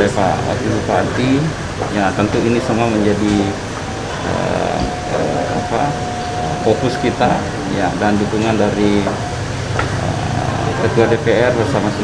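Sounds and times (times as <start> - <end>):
room noise: 0.0 - 12.0
steady high-pitched tone: 0.0 - 12.0.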